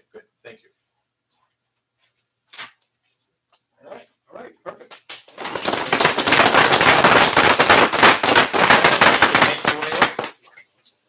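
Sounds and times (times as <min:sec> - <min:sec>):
audience applauding: 0:05.4 - 0:10.3.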